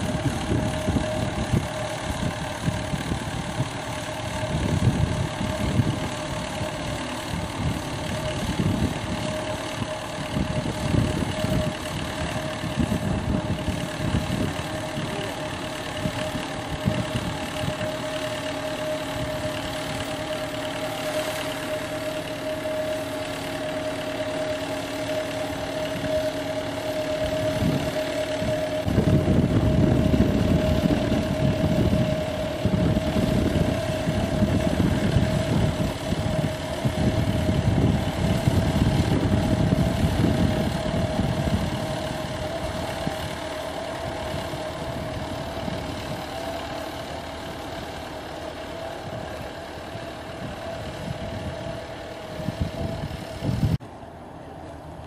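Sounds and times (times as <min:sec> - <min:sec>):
engine running with whine: 0:00.0 - 0:55.0.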